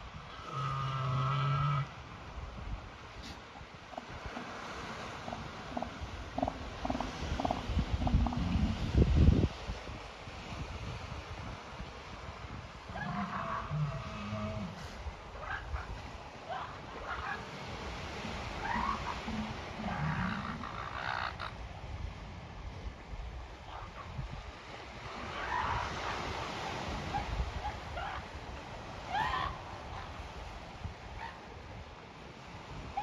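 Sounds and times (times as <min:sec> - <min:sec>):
wind rumble on microphone: 0:00.0 - 0:33.0
elephant seals calling: 0:03.2 - 0:08.7, 0:12.9 - 0:21.6, 0:25.2 - 0:28.3, 0:28.9 - 0:30.4.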